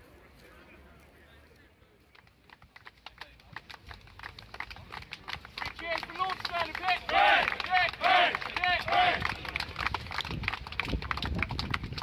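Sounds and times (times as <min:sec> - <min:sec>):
group clapping in rhythm: 0:02.2 - 0:12.0
group shouting in rhythm: 0:07.1 - 0:09.2.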